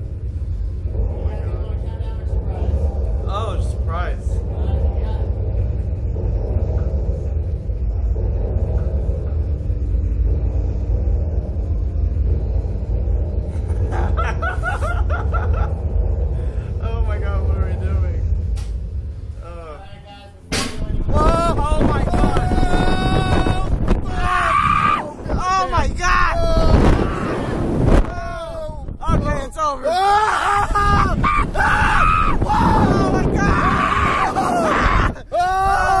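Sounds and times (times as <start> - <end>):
low rumble: 0.0 - 36.0
voices and laughter: 13.5 - 15.9
rushing wind: 20.8 - 36.0
riders yelling and screaming: 21.2 - 28.9, 29.8 - 36.0.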